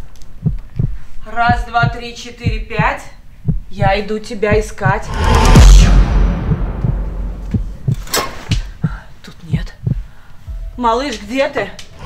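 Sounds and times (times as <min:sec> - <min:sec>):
slow heartbeat thumps: 0:00.4 - 0:10.7
deep boom with low rumble: 0:05.0 - 0:08.1.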